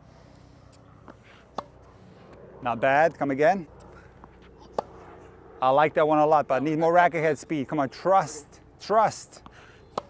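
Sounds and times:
tennis racket hitting ball: 1.0s - 1.8s, 3.8s - 5.1s.

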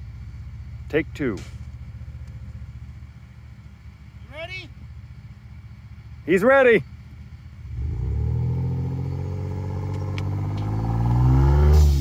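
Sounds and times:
vehicle engine idling: 0.0s - 12.0s.

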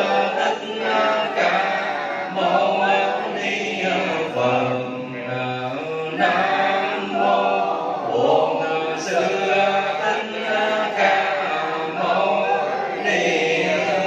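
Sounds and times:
congregation chanting: 0.0s - 14.0s
person chanting over microphone: 0.0s - 14.0s.

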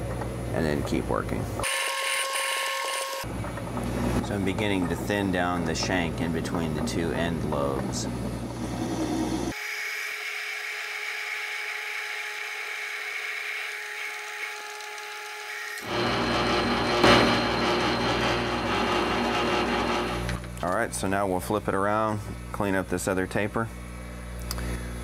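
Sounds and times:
metal lathe cutting: 15.7s - 20.4s.

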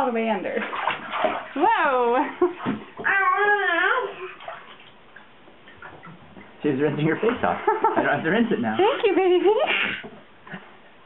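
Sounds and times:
bath water noise: 0.0s - 11.0s
baby crying: 3.0s - 4.4s, 9.6s - 10.1s.

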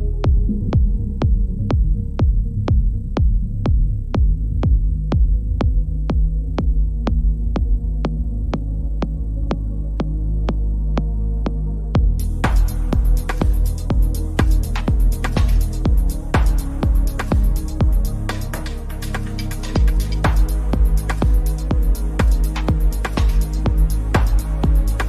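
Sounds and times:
kick drum beat: 0.0s - 18.2s, 19.8s - 25.0s
deep bass drone: 0.0s - 25.0s.

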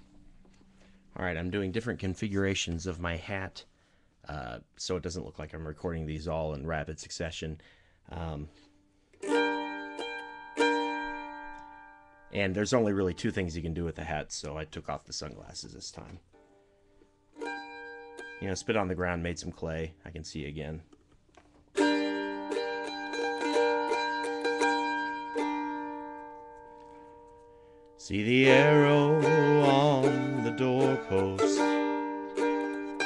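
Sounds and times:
strummed string instrument chords: 9.2s - 13.6s, 17.3s - 20.0s, 21.8s - 33.0s.

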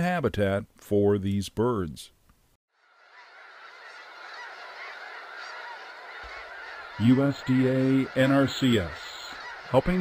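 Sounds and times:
flock of geese calling: 2.8s - 10.0s.

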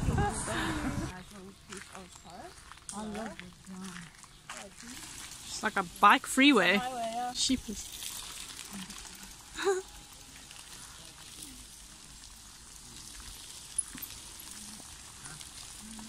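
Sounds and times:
footsteps on gravel: 0.3s - 6.4s
bicycle tyres hissing on gravel: 4.0s - 16.0s.

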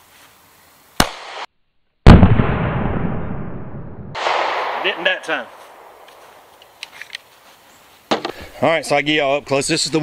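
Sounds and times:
loud close gunshot: 1.0s - 1.5s, 2.1s - 3.5s, 4.1s - 6.0s
pistol shot: 1.0s - 1.5s, 2.1s - 3.1s, 4.1s - 6.0s.

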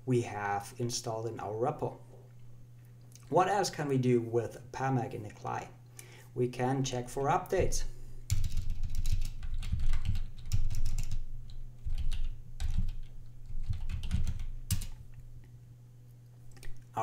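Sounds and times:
typing on computer keyboard: 8.3s - 15.0s.

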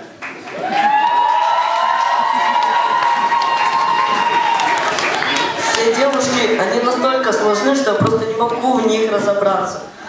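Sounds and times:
audience applauding: 0.0s - 7.0s.

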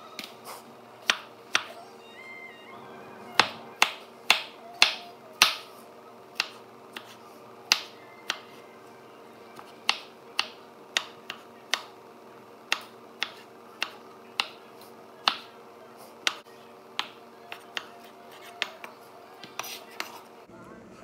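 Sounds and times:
knife chopping on wooden board: 3.4s - 5.7s.

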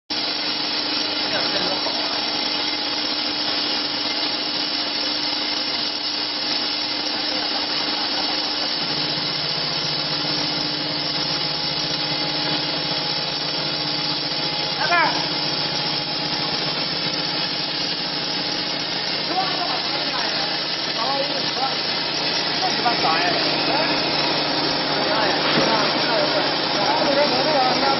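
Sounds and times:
extruder mechanical rush: 0.3s - 27.9s.

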